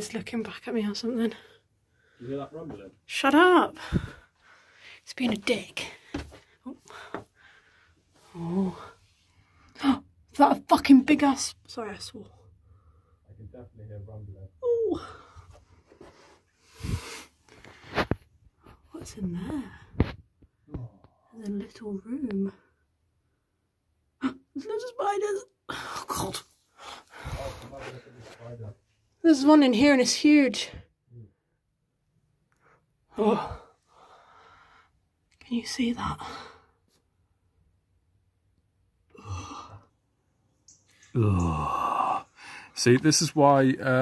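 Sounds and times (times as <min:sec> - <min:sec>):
person sighing: 0:39.1 - 0:39.9, 0:41.1 - 0:42.7.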